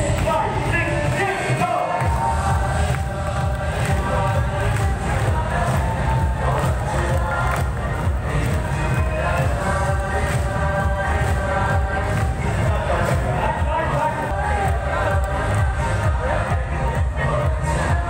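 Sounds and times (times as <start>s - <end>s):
live concert music with bass beat: 0.0s - 18.0s
crowd cheering: 0.7s - 9.6s, 12.2s - 16.4s.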